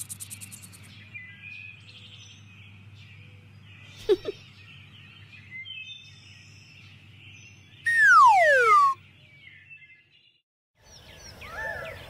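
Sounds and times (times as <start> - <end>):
bird chirps: 0.0 - 1.7, 3.8 - 10.2
cartoon falling whistle: 7.9 - 9.0.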